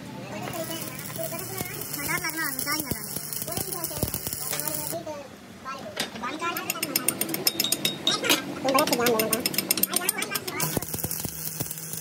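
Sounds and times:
hand tool tapping metal weld: 0.4s - 5.0s, 6.6s - 12.0s.

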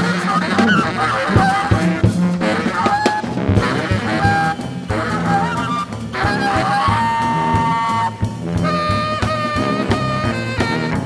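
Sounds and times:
drum hits: 0.0s - 11.0s
low tuba: 0.0s - 11.0s
tenor saxophone: 0.0s - 11.0s.

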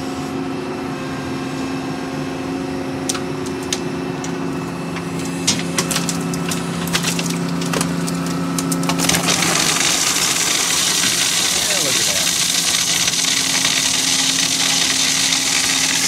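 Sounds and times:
excavator engine and hydraulic hum: 0.0s - 16.0s.

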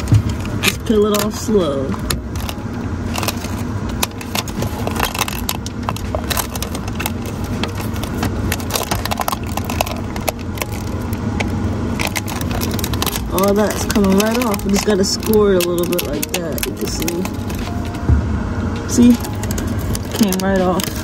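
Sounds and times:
low rumble: 0.0s - 21.0s.

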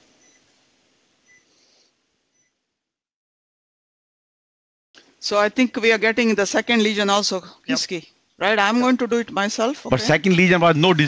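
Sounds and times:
faint electronic beeps: 0.0s - 0.5s, 1.2s - 1.5s, 2.3s - 2.6s.

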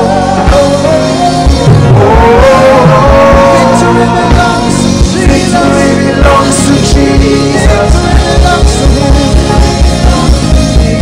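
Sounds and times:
band with kick drum: 0.0s - 11.0s
voices singing: 0.0s - 11.0s.

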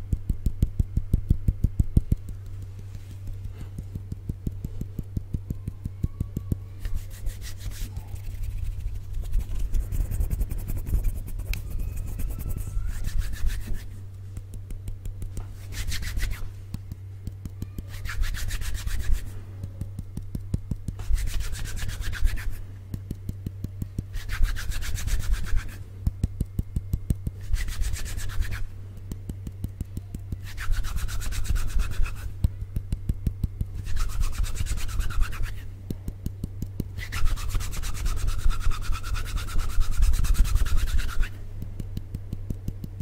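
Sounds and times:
faint low hum: 0.0s - 43.0s
palms rubbing together: 1.8s - 43.0s.

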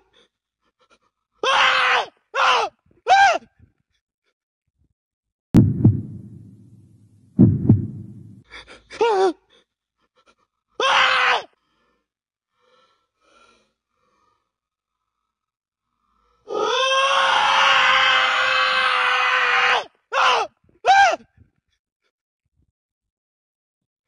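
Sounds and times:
low thumps with rumble: 5.6s - 8.4s.

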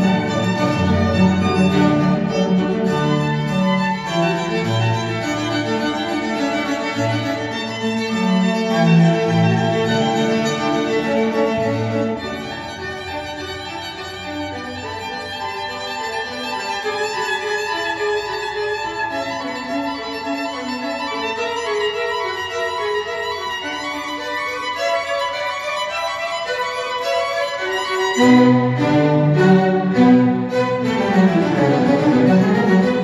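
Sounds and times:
violin melody: 0.0s - 33.0s.

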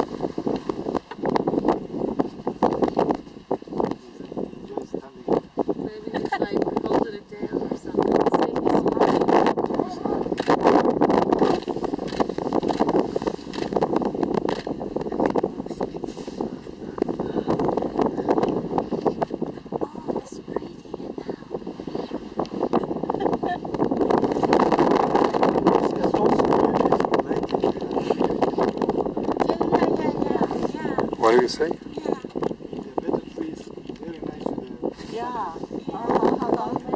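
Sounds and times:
steady low rumble: 0.0s - 36.9s
muffled voices talking: 25.6s - 36.9s.

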